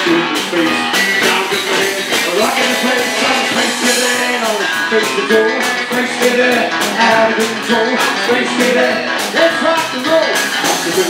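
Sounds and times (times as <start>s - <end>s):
man singing into a microphone: 0.0s - 11.0s
rock and roll band playing: 0.0s - 11.0s.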